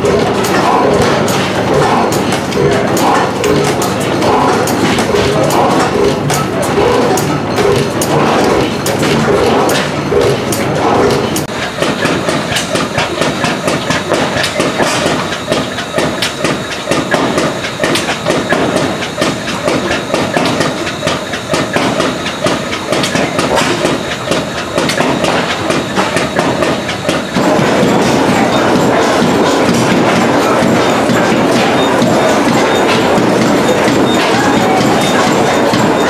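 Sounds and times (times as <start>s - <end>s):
stationary gas engines clattering: 0.0s - 36.0s.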